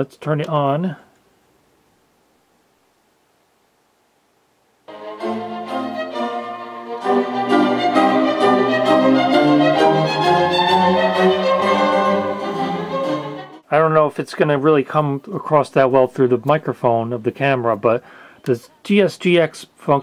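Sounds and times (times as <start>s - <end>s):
classical string music on speakers: 4.9s - 13.6s.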